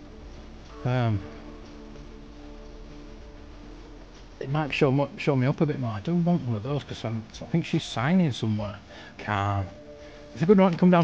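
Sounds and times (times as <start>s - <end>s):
faint shop background music: 0.0s - 11.0s.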